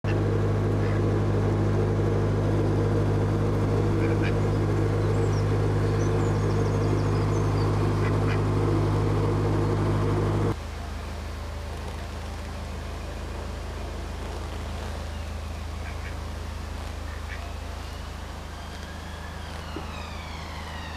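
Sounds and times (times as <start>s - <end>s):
diesel boat engine droning: 0.0s - 20.9s
duck quacking: 4.0s - 4.4s.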